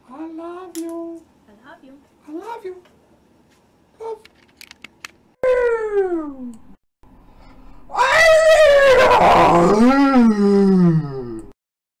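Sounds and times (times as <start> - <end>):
cat-like meowing wails: 7.9 - 11.4.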